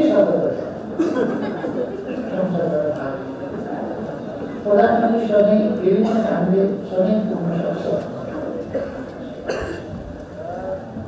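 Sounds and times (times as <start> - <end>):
faint low voices: 0.0 - 11.0
short cough: 1.0 - 1.4, 8.7 - 10.0.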